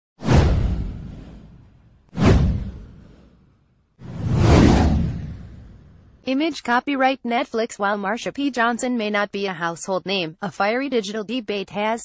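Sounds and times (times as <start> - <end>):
whoosh with deep boom: 0.2 - 6.2.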